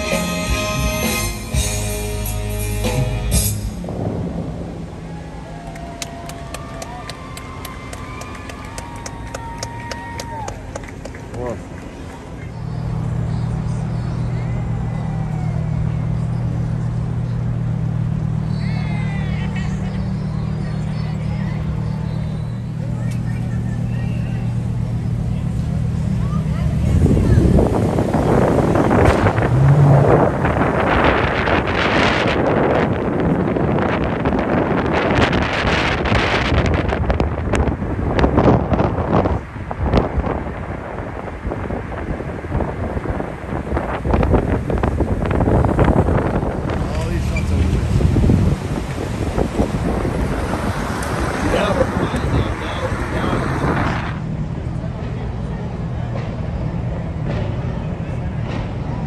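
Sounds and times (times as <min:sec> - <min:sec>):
car idling: 0:00.0 - 0:59.0
wind buffeting microphone: 0:03.8 - 0:14.0, 0:24.8 - 0:59.0.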